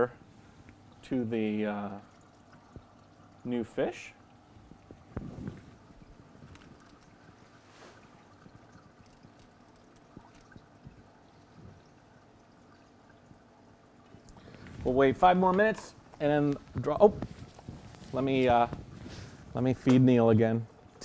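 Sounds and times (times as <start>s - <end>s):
faint water sounds: 0.0s - 21.0s
small clicks: 8.9s - 10.7s.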